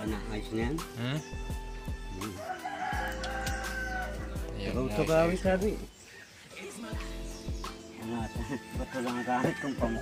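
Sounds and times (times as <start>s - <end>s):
rooster crowing: 2.4s - 4.4s, 9.0s - 10.0s.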